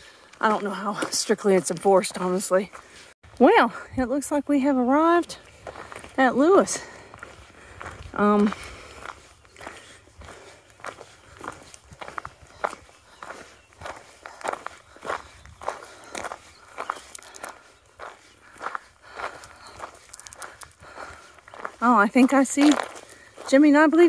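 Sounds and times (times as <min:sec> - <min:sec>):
footsteps on gravel: 0:00.0 - 0:24.0.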